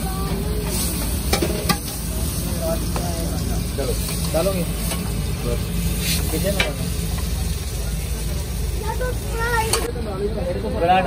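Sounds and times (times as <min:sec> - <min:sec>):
flatbread sizzling on griddle: 0:00.0 - 0:11.0.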